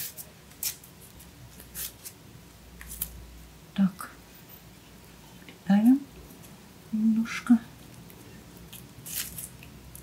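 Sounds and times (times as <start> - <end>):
floral tape rustling: 8.0 - 10.0.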